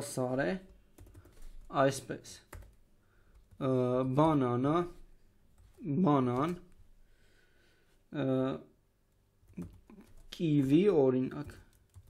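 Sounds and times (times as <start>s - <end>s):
computer keyboard keystrokes: 1.0s - 1.5s, 2.5s - 3.6s, 11.4s - 12.0s.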